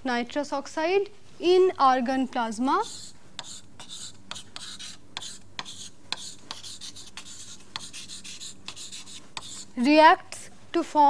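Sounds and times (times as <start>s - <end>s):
pen scratching while writing: 2.8s - 9.7s.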